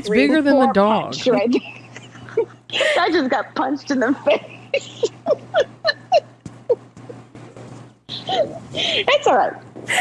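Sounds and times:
steady low hum: 0.0 - 10.0
person laughing: 4.5 - 7.2.

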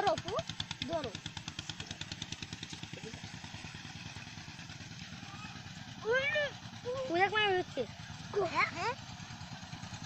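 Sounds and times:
small engine puttering: 0.0 - 10.0.

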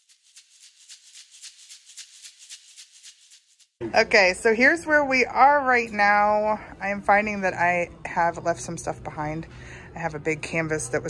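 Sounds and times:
shaker percussion: 0.0 - 3.8.

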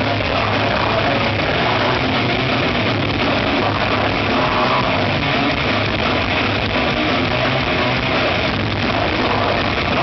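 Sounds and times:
death metal band playing live: 0.0 - 10.0.

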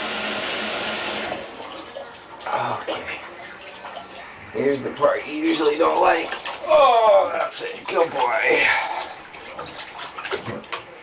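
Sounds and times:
water running into a bathtub: 0.0 - 11.0.

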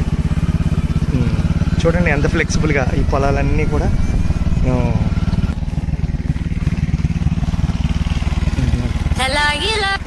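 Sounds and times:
small engine running: 0.0 - 10.0.

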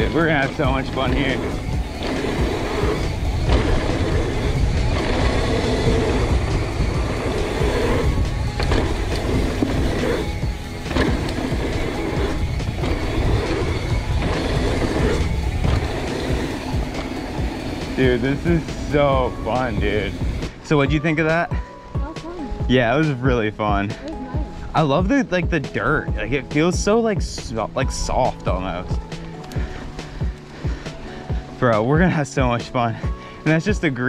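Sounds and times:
wind buffeting microphone: 0.0 - 21.0
bike tyres rolling on dirt: 0.0 - 21.4
background music: 0.0 - 34.0.

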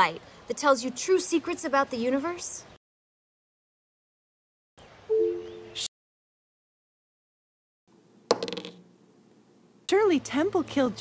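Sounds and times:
die rolling on a hard tabletop: 8.3 - 8.8.

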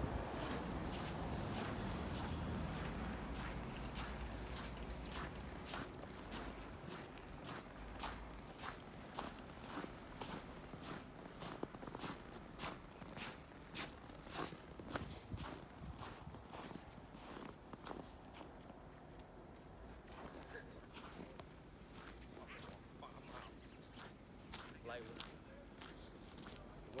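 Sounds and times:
footsteps in deep snow: 0.0 - 27.0.

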